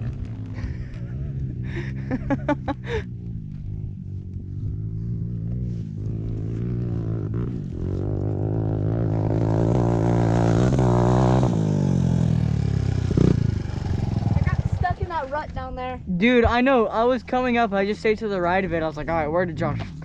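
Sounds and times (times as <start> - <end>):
dirt bike engines idling: 0.0 - 20.0.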